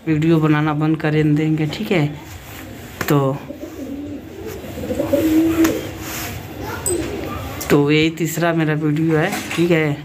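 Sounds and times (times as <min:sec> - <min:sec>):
bird cooing: 0:03.5 - 0:07.7.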